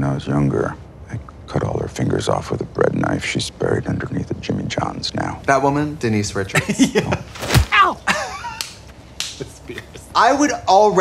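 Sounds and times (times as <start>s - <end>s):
sharp snaps: 8.6s - 9.5s.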